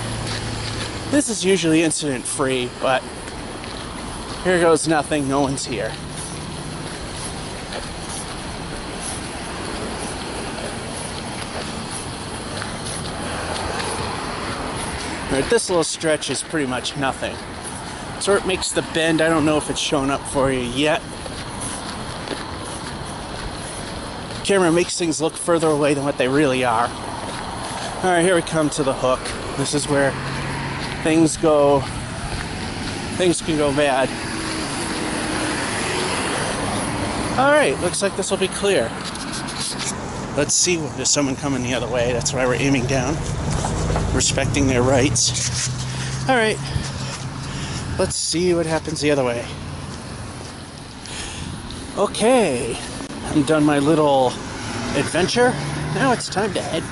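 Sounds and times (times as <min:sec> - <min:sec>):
traffic rushing past: 0:00.0 - 0:56.9.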